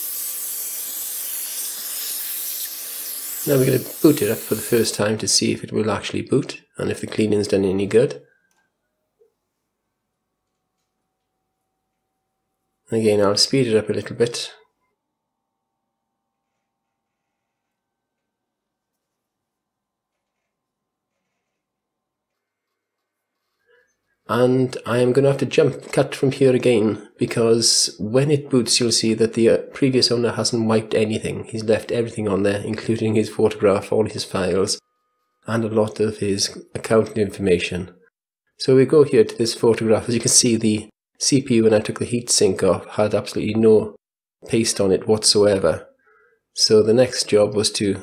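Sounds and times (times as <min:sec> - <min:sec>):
vacuum cleaner running: 0:00.0 - 0:04.9.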